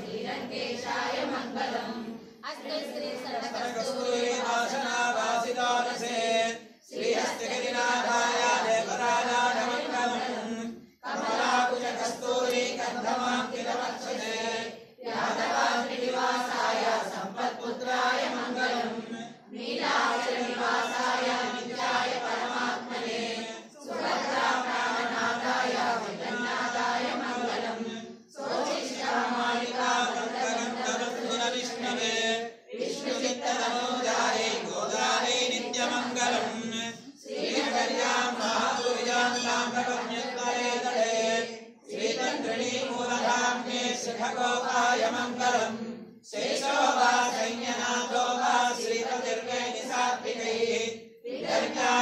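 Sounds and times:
voices chanting: 0.0s - 52.0s.

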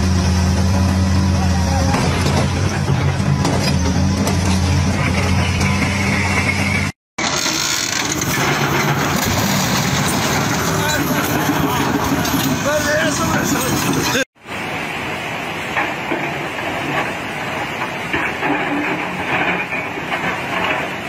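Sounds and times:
heavy diesel engine running: 0.0s - 14.2s
people talking outdoors: 10.6s - 14.2s.

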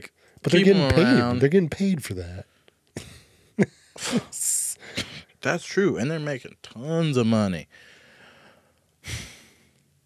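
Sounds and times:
person sighing: 9.0s - 9.6s.

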